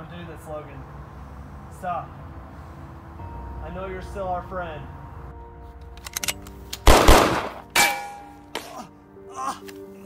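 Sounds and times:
heavy gunshots: 6.8s - 7.6s
metallic clang with ring: 7.8s - 8.5s.

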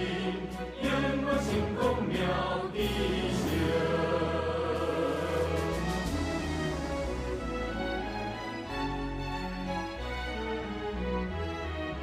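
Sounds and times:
choir singing with accompaniment: 0.0s - 8.4s.

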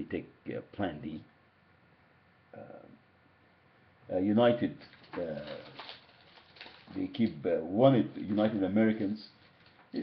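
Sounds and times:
man speaking: 0.0s - 1.3s, 2.6s - 3.0s, 4.1s - 5.8s, 6.9s - 9.4s.

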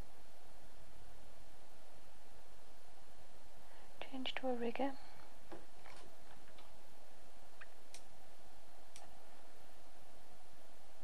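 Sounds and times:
steady background hiss: 0.0s - 11.0s.

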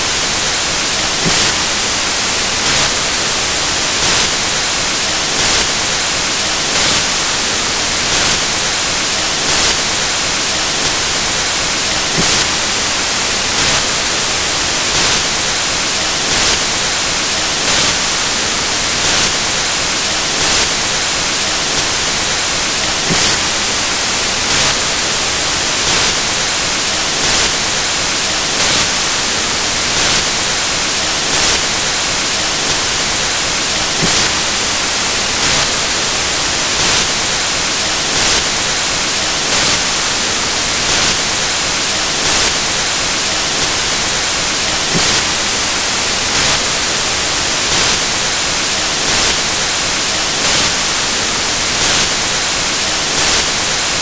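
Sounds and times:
loud static hiss: 0.0s - 54.0s.

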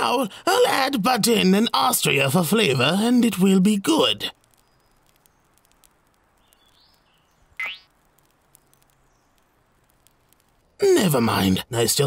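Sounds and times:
faint bird chirps: 4.3s - 10.8s.

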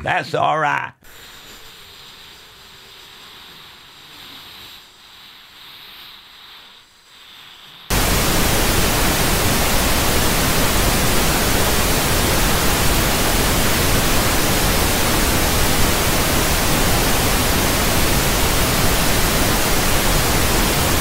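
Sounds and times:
faint hiss: 1.0s - 21.0s
loud tv static: 7.9s - 21.0s.

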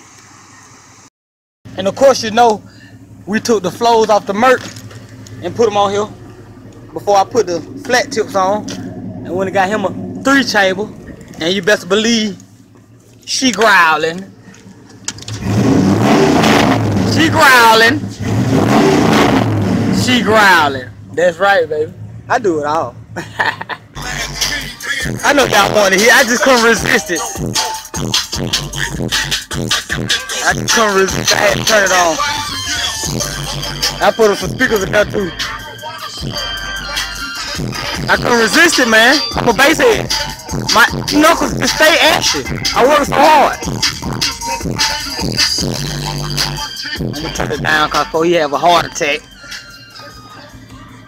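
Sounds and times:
music with deep bass on car stereo: 1.7s - 51.0s
pickup engine revving: 1.7s - 51.0s.

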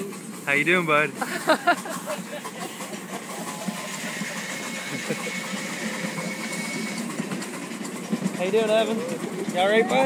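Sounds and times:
miniature train running: 0.0s - 10.0s.

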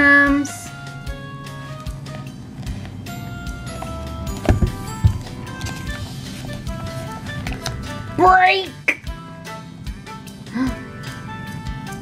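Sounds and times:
soft background music: 0.0s - 12.0s
short thumps: 4.4s - 7.2s.

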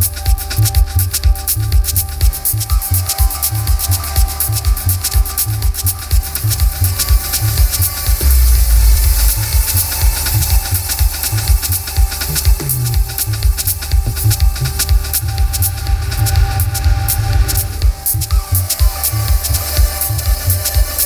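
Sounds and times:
electronic techno music: 0.0s - 21.0s.

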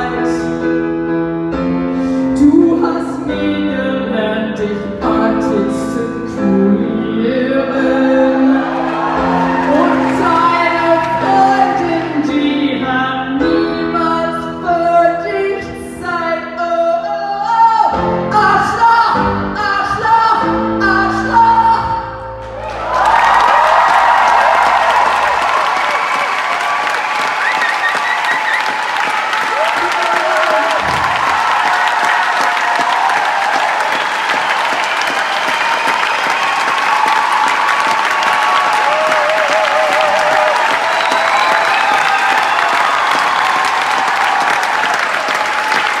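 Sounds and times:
audience applauding: 8.3s - 12.3s, 22.4s - 46.0s
whistles and whoops: 22.6s - 29.1s, 30.9s - 46.0s.

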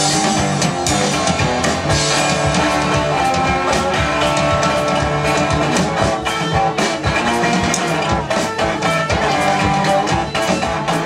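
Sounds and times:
drum kit steady beat: 0.0s - 11.0s
resonator guitar strummed hard: 0.0s - 11.0s.

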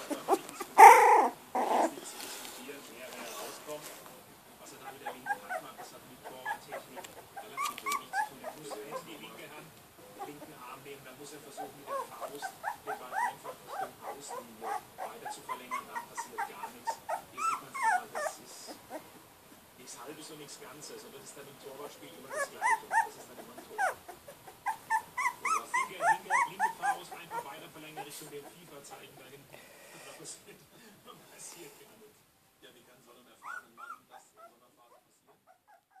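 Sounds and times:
puppy whimpering squeaks: 0.0s - 2.0s, 4.9s - 9.1s, 11.6s - 19.0s, 22.2s - 28.6s, 33.4s - 36.0s.

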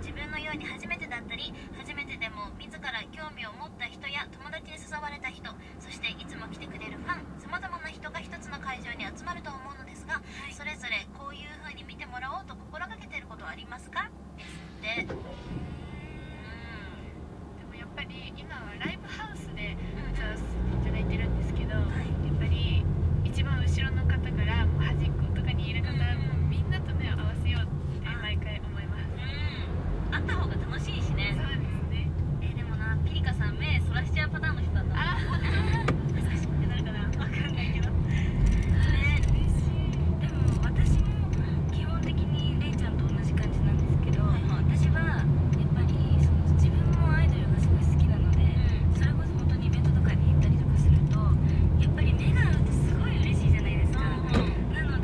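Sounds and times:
engine and road rumble in car: 0.0s - 55.0s.

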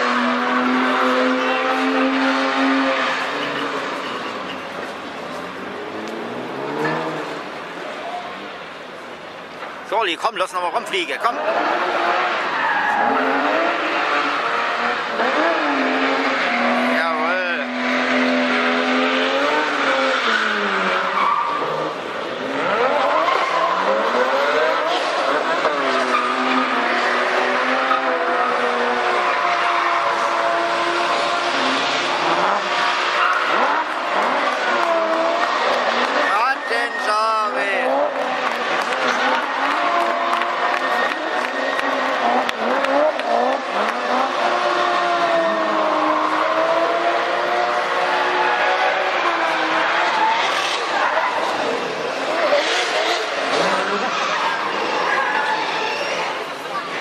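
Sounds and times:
car engine revving: 0.0s - 8.8s, 11.0s - 56.7s.

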